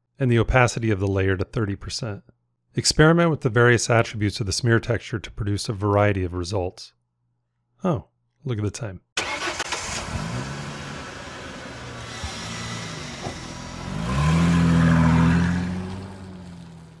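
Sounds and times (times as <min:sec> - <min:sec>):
car engine starting and revving: 0:09.2 - 0:17.0.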